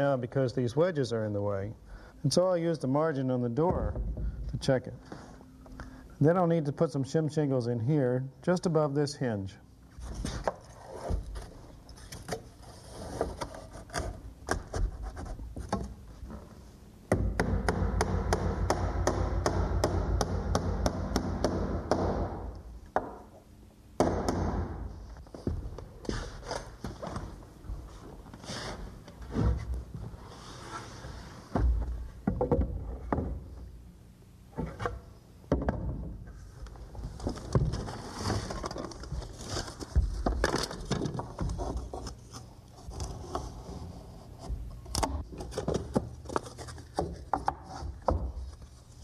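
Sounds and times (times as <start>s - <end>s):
wood-on-wood scraping: 26.0s - 31.8s.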